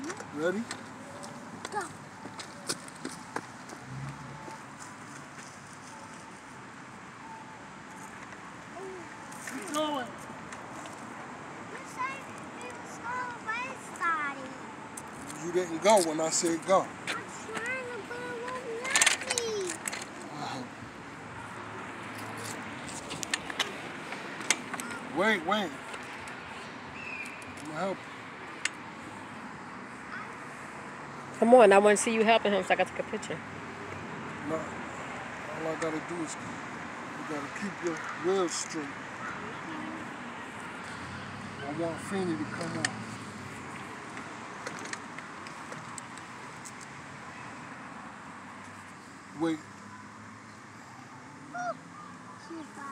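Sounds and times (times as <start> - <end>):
outdoor background noise: 0.0 - 52.9.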